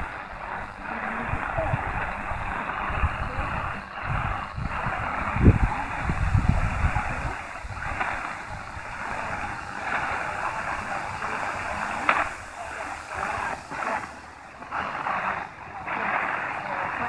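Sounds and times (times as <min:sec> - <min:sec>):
radio static hiss: 0:00.0 - 0:17.0
wind rumbling on microphone: 0:00.0 - 0:17.0.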